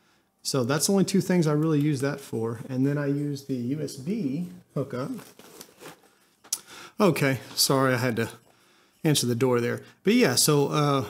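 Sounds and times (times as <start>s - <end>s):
hands rustling against a bag: 4.1s - 6.6s.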